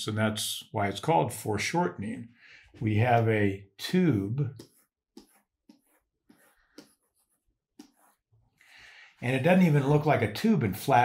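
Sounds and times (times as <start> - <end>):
stylus scratching drawing tablet: 4.5 - 8.6.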